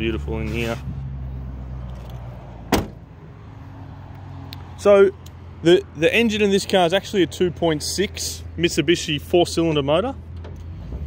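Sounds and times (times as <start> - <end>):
car door shutting: 2.7 - 3.1.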